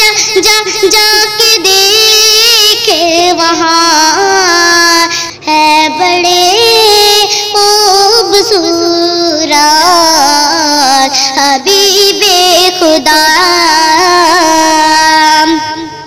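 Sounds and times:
high voice singing: 0.0 - 16.0.

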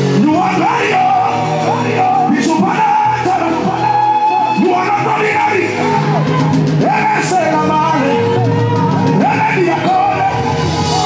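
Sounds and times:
band accompaniment with held chords: 0.0 - 11.0.

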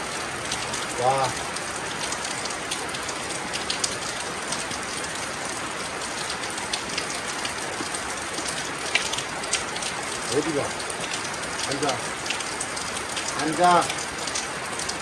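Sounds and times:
steady rain falling: 0.0 - 15.0.

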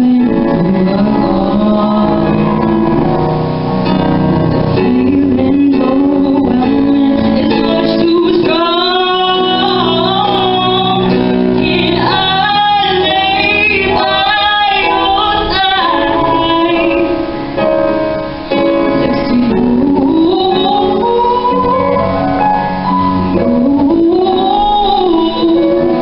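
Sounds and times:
woman singing into a microphone: 0.0 - 3.1, 3.8 - 26.0
electronic keyboard accompaniment: 0.0 - 26.0.

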